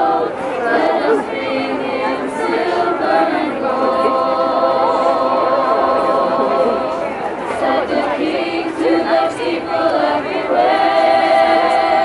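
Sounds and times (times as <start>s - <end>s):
choir singing a carol: 0.0s - 12.0s.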